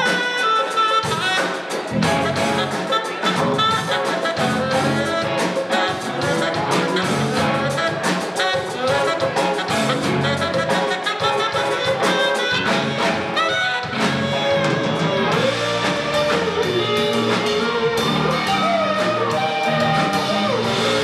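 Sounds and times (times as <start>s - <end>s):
electric guitars: 0.0s - 21.0s
live band playing: 0.0s - 21.0s
saxophone: 0.0s - 21.0s.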